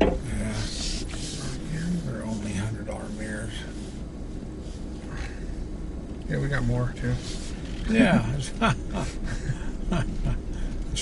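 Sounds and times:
truck engine and tyres rumbling: 0:00.0 - 0:11.0.

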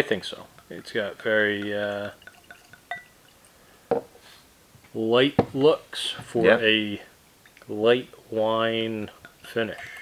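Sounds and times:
glass tick: 0:00.6 - 0:03.4
liquid pouring into glass: 0:00.6 - 0:03.6.

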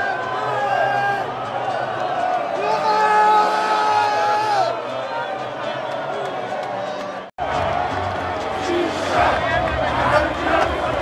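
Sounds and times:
crowd holding a long note: 0:00.0 - 0:11.0
stadium crowd cheering and chanting: 0:00.0 - 0:11.0.

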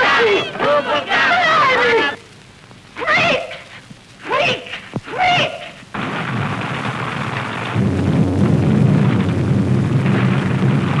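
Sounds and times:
woman screaming: 0:00.0 - 0:02.2
rain and storm hiss: 0:00.0 - 0:11.0.

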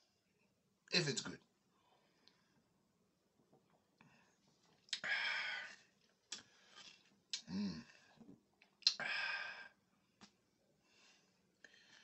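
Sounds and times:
mouth clicks and lip smacks: 0:06.2 - 0:06.5, 0:08.6 - 0:09.0.

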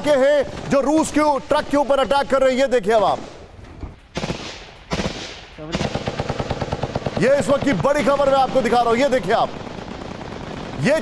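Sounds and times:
automatic rifle fire: 0:04.1 - 0:11.0.

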